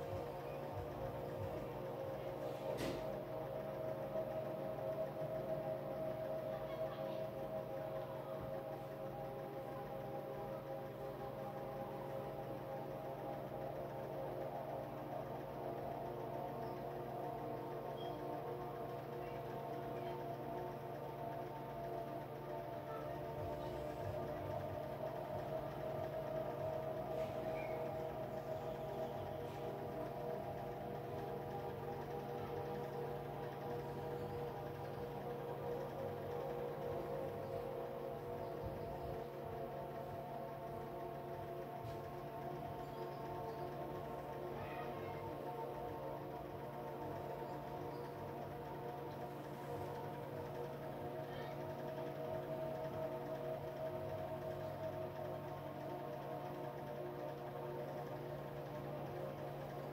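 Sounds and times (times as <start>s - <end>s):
ambient drone music: 0.0s - 59.9s.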